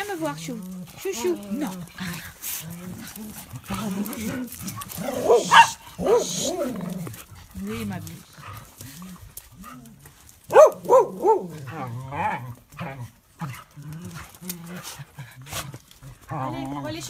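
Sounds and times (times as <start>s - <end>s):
soft low dog vocal noises: 0.0s - 17.0s
small dogs barking: 4.5s - 7.0s, 10.4s - 12.4s.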